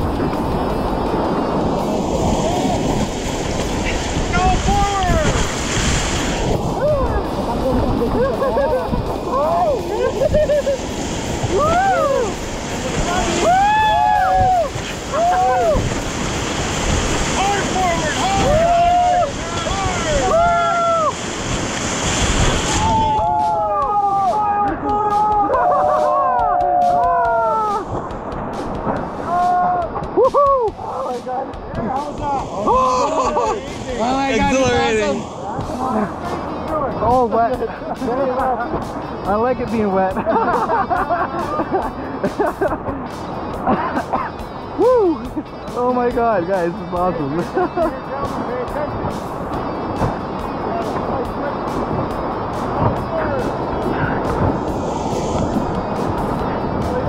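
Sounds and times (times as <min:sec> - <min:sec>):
rapids splashing against a raft: 0:00.0 - 0:57.0
melodic music: 0:23.0 - 0:57.0.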